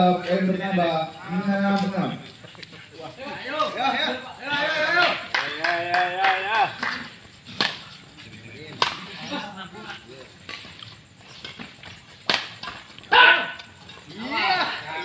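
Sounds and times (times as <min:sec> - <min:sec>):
voices talking: 0:00.0 - 0:15.0
rackets smacking shuttlecock: 0:01.8 - 0:02.0, 0:06.6 - 0:07.9, 0:08.7 - 0:09.2, 0:10.4 - 0:13.7.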